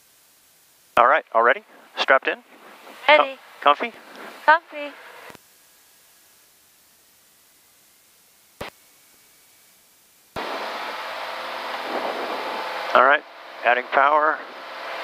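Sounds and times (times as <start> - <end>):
aircraft engine drone: 1.0 - 5.4, 10.4 - 15.0.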